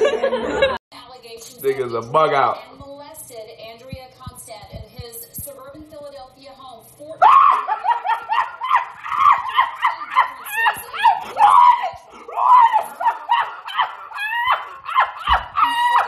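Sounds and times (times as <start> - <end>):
person laughing hysterically: 7.3 - 16.0.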